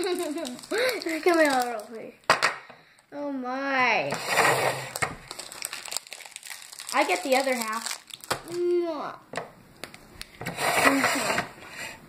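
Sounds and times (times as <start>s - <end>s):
candy wrapper crinkling: 0.0s - 2.1s, 4.8s - 8.8s.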